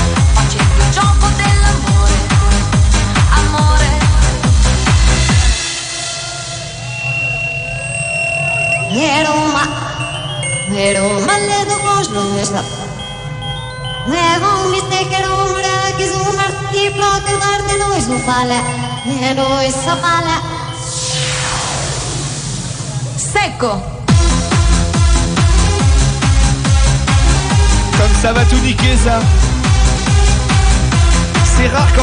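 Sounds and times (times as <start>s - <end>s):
rising synth sweep: 5.4s - 14.1s, 16.4s - 23.4s
high-pitched held tone: 5.6s - 23.4s
falling noise sweep: 20.7s - 23.4s.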